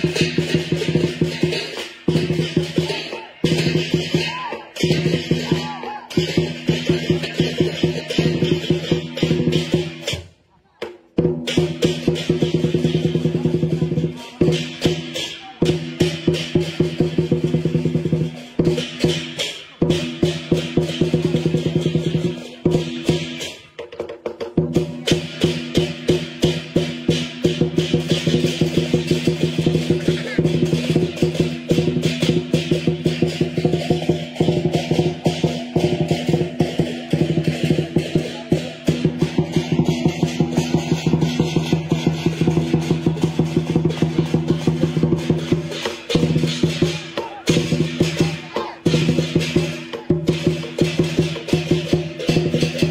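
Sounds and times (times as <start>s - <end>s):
ringing cymbals: 0.0s - 10.3s, 11.4s - 23.8s, 24.6s - 52.9s
drum strokes: 0.0s - 52.9s.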